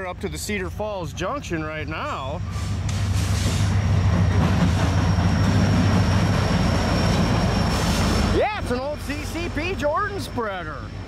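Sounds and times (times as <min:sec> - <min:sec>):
diesel locomotive rumbling past: 0:00.0 - 0:11.0.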